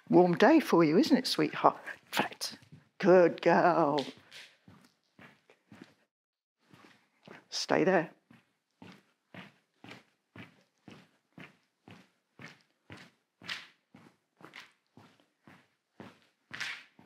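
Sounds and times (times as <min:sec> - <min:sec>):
footsteps on hard floor: 0:01.8 - 0:07.6, 0:08.2 - 0:17.0.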